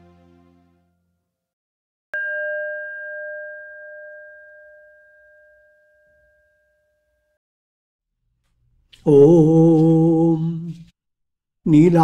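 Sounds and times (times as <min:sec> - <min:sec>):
bell ringing: 0:02.2 - 0:07.3.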